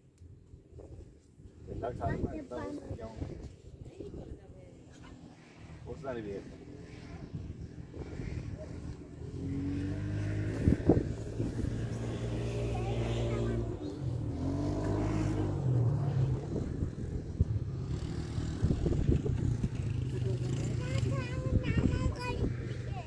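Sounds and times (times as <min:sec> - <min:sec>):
voices: 0:01.8 - 0:18.0, 0:19.0 - 0:23.0
quad bike engine revving: 0:05.1 - 0:23.0.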